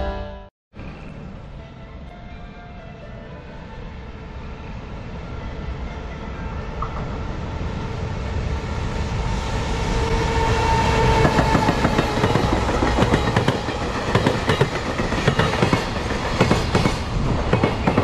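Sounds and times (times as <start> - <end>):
freight train running: 0.0 - 18.0
locomotive whine: 0.0 - 18.0.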